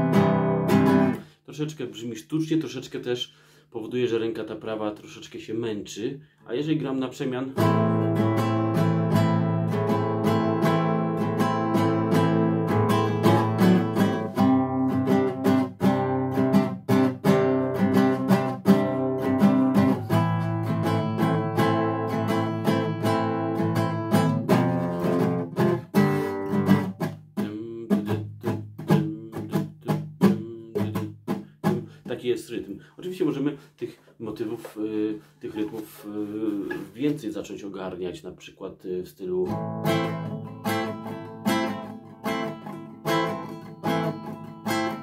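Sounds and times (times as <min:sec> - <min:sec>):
nylon-string guitar strumming: 0:00.0 - 0:01.3, 0:07.6 - 0:32.2, 0:39.4 - 0:45.0.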